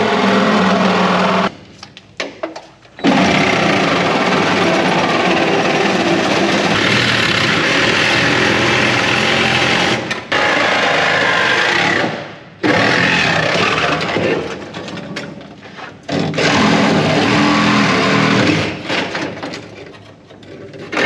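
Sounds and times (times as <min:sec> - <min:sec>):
power tool cutting sheet metal: 0:00.0 - 0:01.5, 0:03.0 - 0:14.4, 0:16.1 - 0:19.1.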